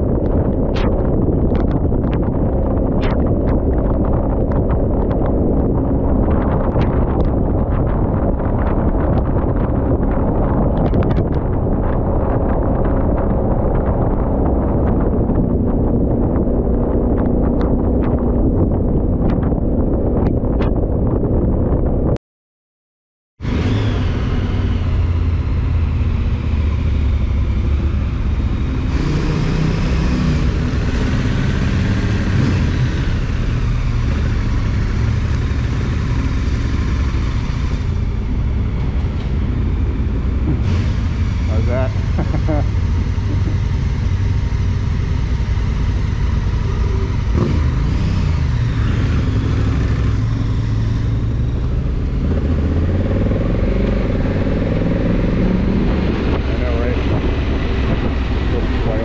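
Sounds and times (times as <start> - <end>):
motorcycle engine running: 23.9 - 59.0.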